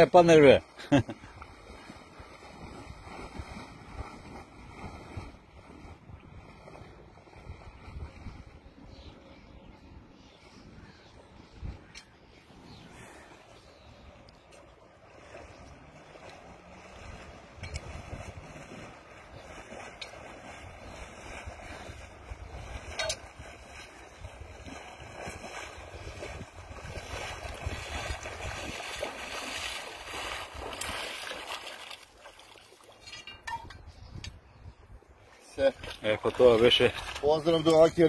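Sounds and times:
person wading through water: 0:00.0 - 0:33.7, 0:34.8 - 0:38.0
wind rumbling on microphone: 0:01.1 - 0:38.0.

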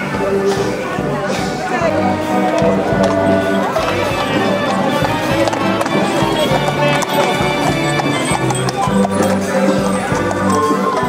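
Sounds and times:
horse hooves on brick paving: 0:00.0 - 0:11.0
music playing: 0:00.0 - 0:11.0.

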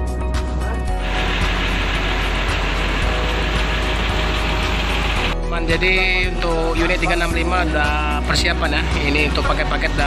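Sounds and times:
bus engine idling: 0:01.0 - 0:05.4.

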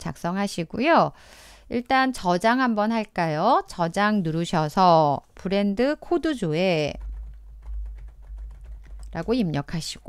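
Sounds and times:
steady low hum: 0:06.8 - 0:10.0.

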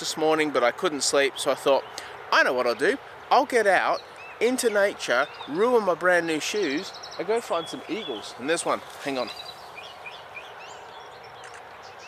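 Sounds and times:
birds chirping: 0:00.0 - 0:12.0
steady outdoor hiss: 0:00.0 - 0:12.0.

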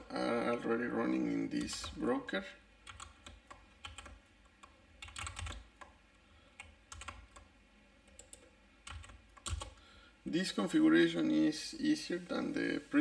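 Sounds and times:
computer keyboard typing: 0:01.5 - 0:02.0, 0:02.8 - 0:06.0, 0:06.6 - 0:07.5, 0:08.1 - 0:09.8.

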